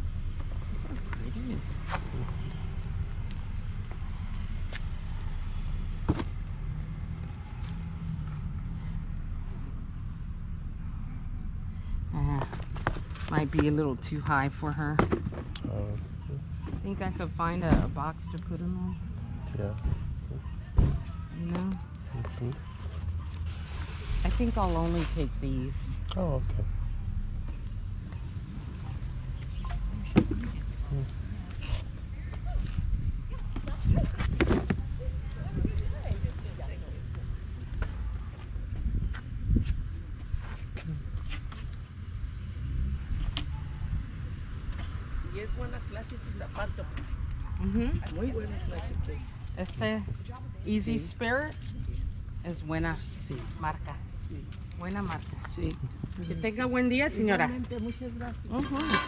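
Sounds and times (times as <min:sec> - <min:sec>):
indistinct voices: 0:15.6 - 0:23.0, 0:57.6 - 0:59.0
steady low rumble: 0:21.2 - 0:56.2.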